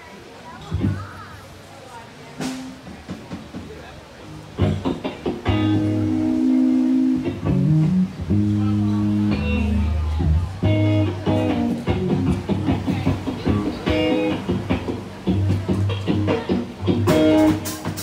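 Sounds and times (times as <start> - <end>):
crowd voices: 0.0 - 18.0
loud guitar and bass music: 4.4 - 18.0.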